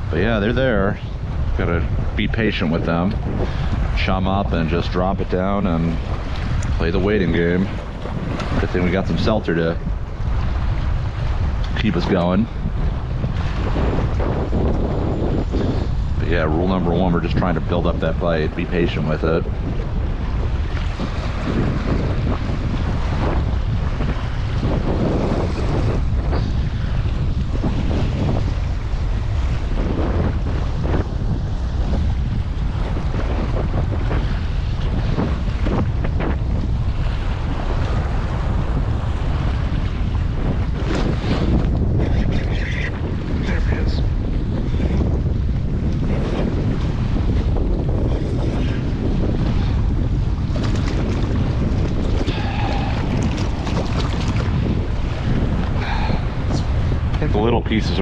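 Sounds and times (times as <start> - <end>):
water lapping against kayak hull: 0.0 - 58.0
wind buffeting microphone: 0.0 - 58.0.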